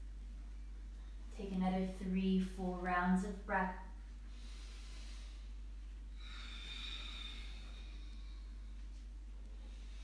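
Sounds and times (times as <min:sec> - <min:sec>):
deep breath inhale and exhale: 0:04.2 - 0:10.0.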